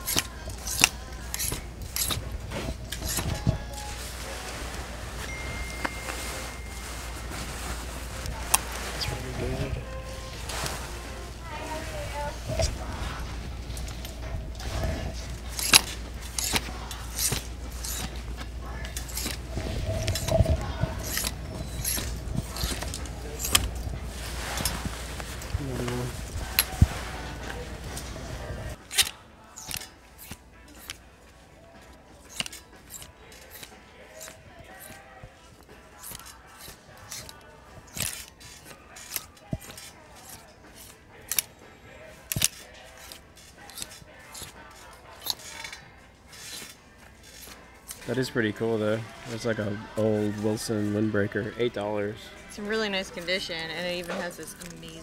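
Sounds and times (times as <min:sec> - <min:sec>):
hangers clicking on metal rail: 0:00.0 - 0:03.5, 0:13.7 - 0:24.8, 0:28.8 - 0:31.1, 0:31.8 - 0:35.0, 0:35.6 - 0:41.6, 0:42.2 - 0:48.2
store background hum: 0:00.0 - 0:55.0.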